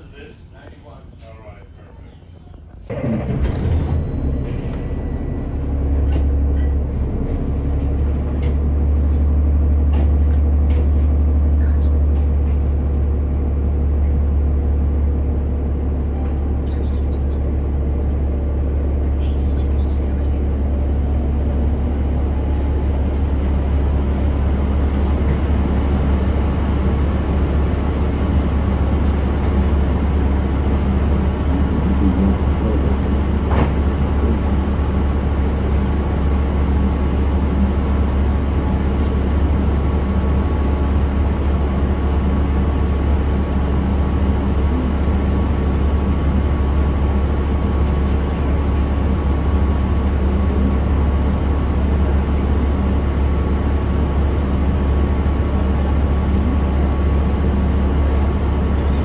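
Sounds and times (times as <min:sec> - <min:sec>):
bus engine idling: 0:00.0 - 0:59.0.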